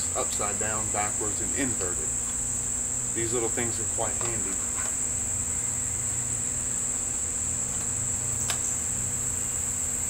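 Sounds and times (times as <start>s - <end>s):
insects chirring: 0.0s - 10.0s
low hum: 0.0s - 10.0s.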